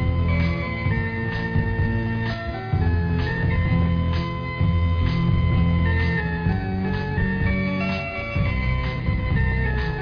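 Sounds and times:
instrumental pop music: 0.0s - 10.0s.

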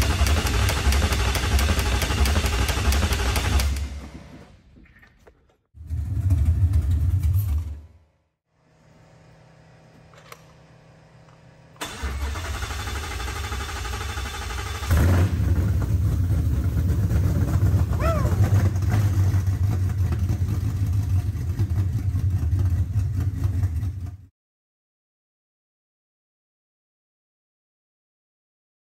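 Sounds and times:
starter motor cranking: 11.8s - 15.1s
car engine running: 14.8s - 24.2s.

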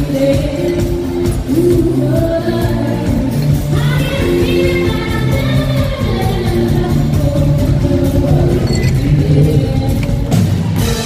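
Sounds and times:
live band playing loud music: 0.0s - 11.0s.

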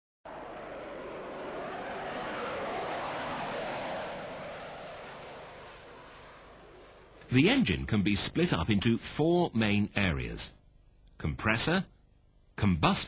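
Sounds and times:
jet aircraft flying past: 0.3s - 9.2s.

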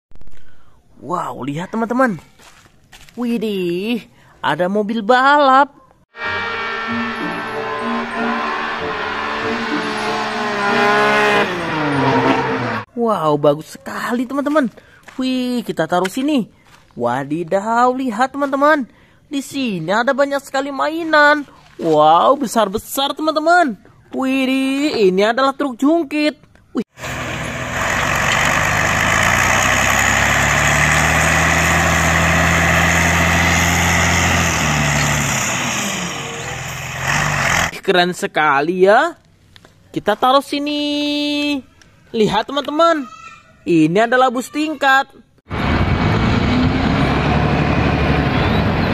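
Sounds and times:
car engine at high revs: 6.2s - 12.9s, 27.0s - 37.7s, 45.5s - 48.9s
tyres squealing: 6.2s - 12.9s.

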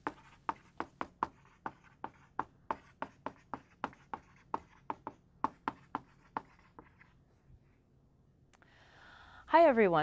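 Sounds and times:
marker squeaking on whiteboard: 0.0s - 7.1s.

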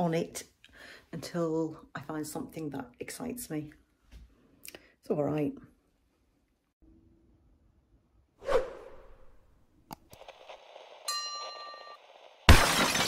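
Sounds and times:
whoosh: 8.4s - 9.5s
bell-like ding: 11.1s - 12.0s
glass shattering crash: 12.5s - 13.0s.

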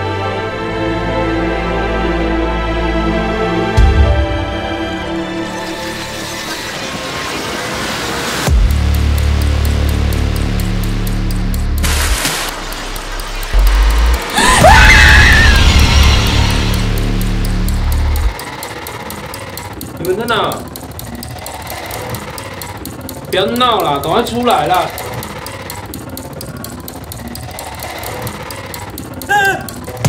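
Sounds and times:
deep rumbling drone: 8.5s - 18.4s
shriek: 14.3s - 17.1s.

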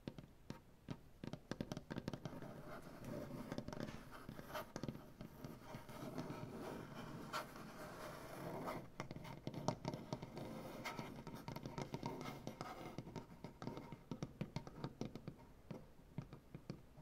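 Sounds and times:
fingertips tapping on wood: 0.0s - 17.0s.

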